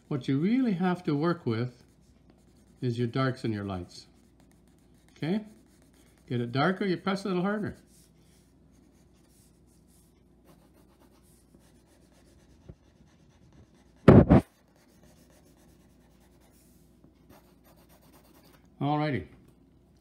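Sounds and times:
pencil scratching on paper: 0.0s - 18.7s
loud double thump: 14.0s - 14.4s.

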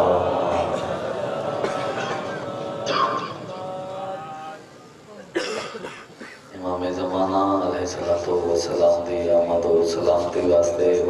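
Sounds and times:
man chanting: 0.0s - 4.8s
man coughing: 1.6s - 3.4s, 5.3s - 6.5s.

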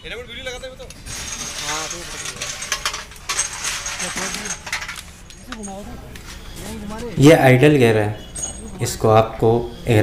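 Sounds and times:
loud metal clanks: 1.0s - 5.1s
metal parts clinking: 1.0s - 5.8s.

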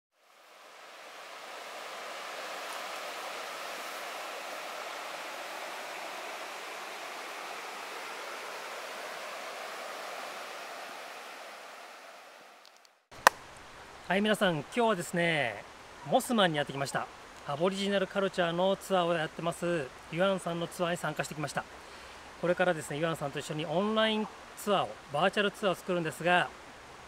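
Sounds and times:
creek water running over stones: 0.2s - 11.4s.

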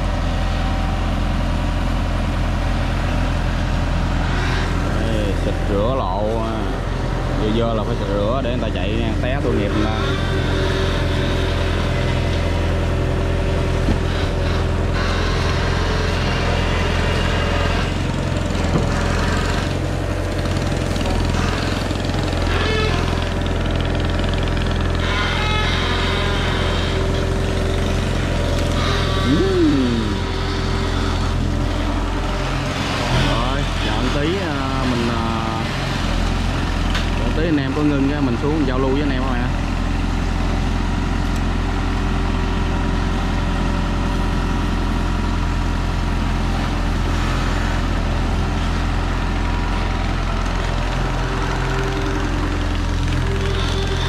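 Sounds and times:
excavator diesel engine droning: 0.0s - 54.0s.

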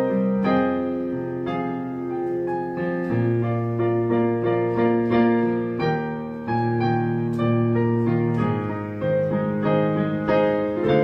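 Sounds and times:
digital piano playing chords: 0.0s - 11.0s.

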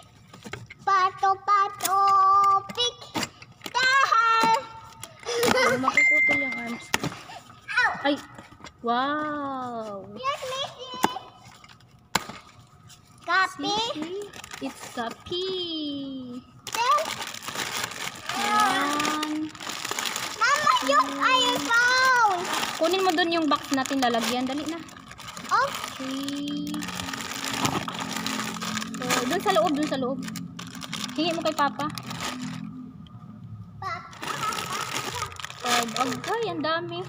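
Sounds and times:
plastic packaging crinkling: 13.1s - 15.4s, 16.6s - 32.9s, 34.1s - 36.8s.

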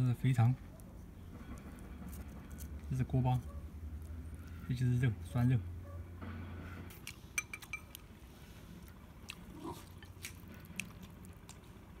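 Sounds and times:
chewing and crunching: 6.9s - 12.0s
chopsticks clicking on bowl: 7.4s - 8.0s.

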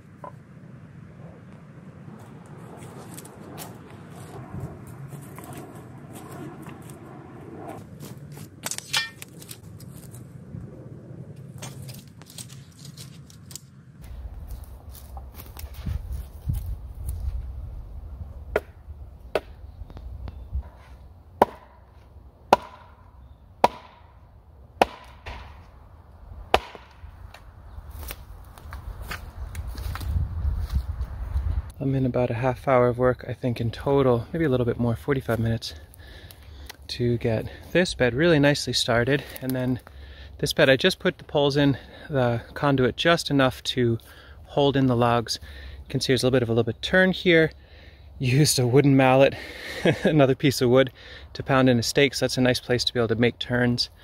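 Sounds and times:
rustling of wood and brush: 1.4s - 10.6s, 11.4s - 18.2s, 26.5s - 31.7s
stake pounded with wooden mallet: 21.4s - 21.8s, 22.5s - 23.0s, 23.6s - 24.1s, 24.8s - 25.6s, 26.5s - 27.0s.

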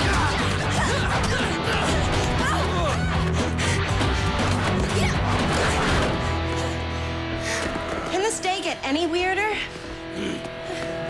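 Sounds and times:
action score music: 0.0s - 11.0s.

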